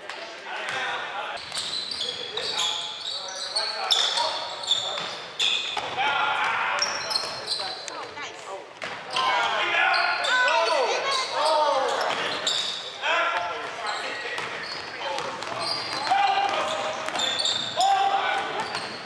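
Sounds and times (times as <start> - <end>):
sneakers squeaking: 0.7 - 19.0
players calling out: 9.1 - 19.0.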